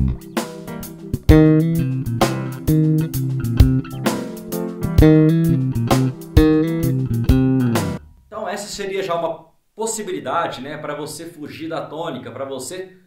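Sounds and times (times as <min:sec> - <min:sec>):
backing track with percussive hits: 0:00.0 - 0:08.3
electric bass groove: 0:00.0 - 0:08.3
man talking: 0:08.3 - 0:13.0.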